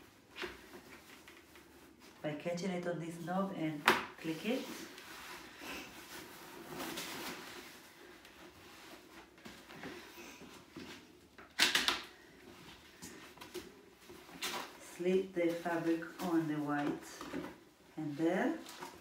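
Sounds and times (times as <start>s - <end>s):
fabric rustling: 3.1s - 11.3s, 12.2s - 19.0s.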